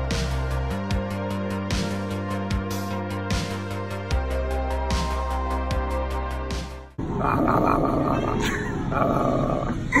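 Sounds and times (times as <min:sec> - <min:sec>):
bellowing growl: 0:07.0 - 0:10.0.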